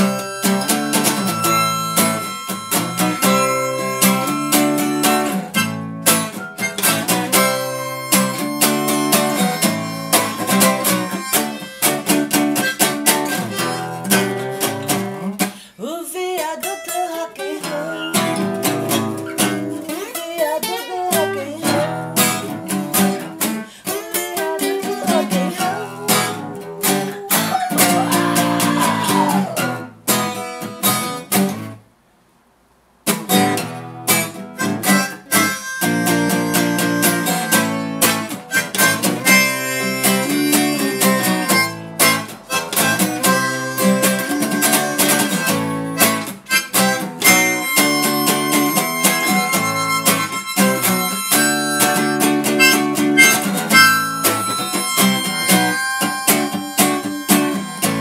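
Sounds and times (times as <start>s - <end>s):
steady held notes: 0.0s - 15.3s, 18.0s - 20.0s, 33.5s - 58.0s
acoustic guitar music: 0.0s - 31.9s, 33.0s - 58.0s.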